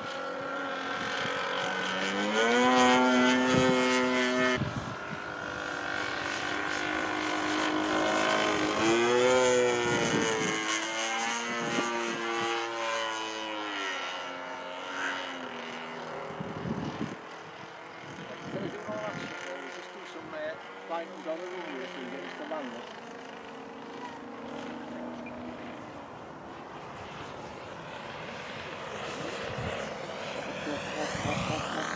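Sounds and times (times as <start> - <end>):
model plane motor and propeller droning: 0.0 - 31.9.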